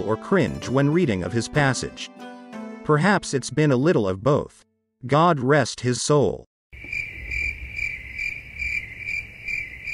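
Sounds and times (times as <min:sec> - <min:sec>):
insect chirping: 0:06.8 - 0:09.9.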